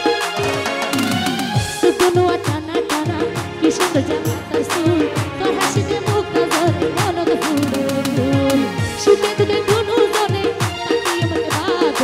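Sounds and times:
hand-drum beat: 0.0 - 8.6.

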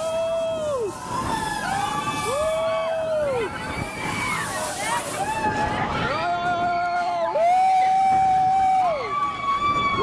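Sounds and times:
noisy rush of spinning ride: 0.0 - 10.0.

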